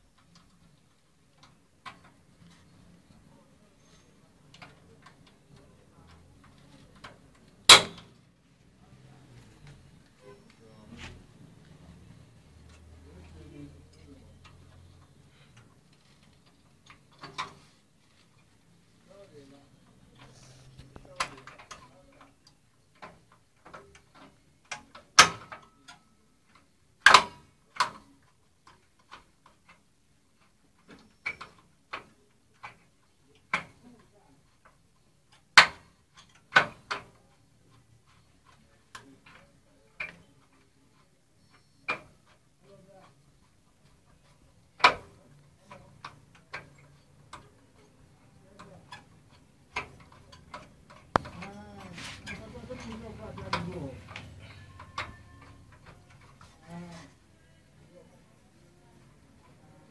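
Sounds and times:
hard objects clicking and knocking: 0:26.6 - 0:57.2.

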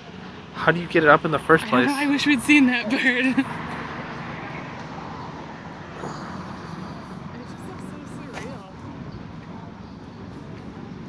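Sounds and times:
low engine hum: 0:00.0 - 0:11.0
outdoor background noise: 0:00.0 - 0:11.0.

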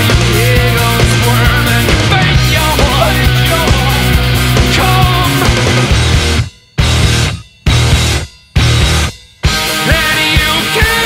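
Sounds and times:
loud rock band music: 0:00.0 - 0:11.0.

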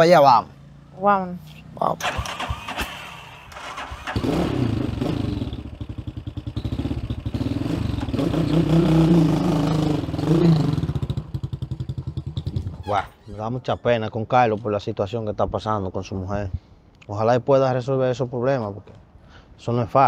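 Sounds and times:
motorcycle engine starting and revving: 0:00.6 - 0:13.1.

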